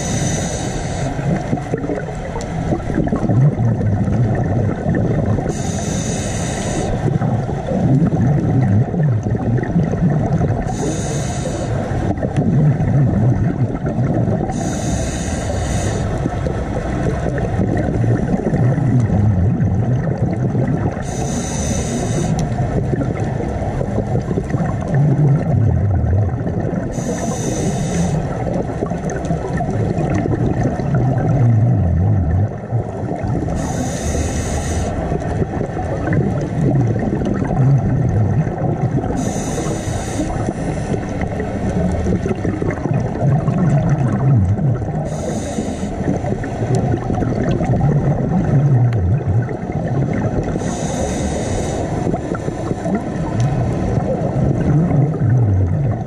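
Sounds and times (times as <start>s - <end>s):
exhaled bubbles hissing: 0.0s - 56.0s
low underwater rumble: 0.0s - 56.0s.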